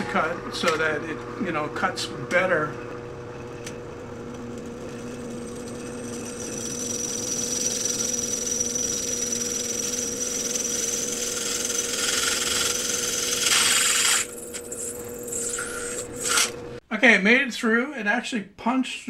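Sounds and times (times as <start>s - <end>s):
drill press running: 2.5s - 16.8s
drill bit grinding through steel: 4.5s - 16.6s.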